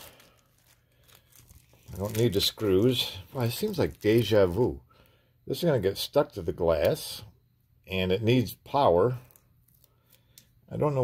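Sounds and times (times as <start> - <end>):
plastic bag crinkling: 0.0 - 4.8, 9.1 - 10.4.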